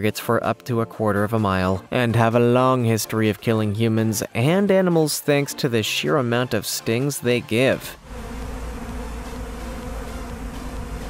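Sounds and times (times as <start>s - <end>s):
bees buzzing: 8.0s - 11.0s.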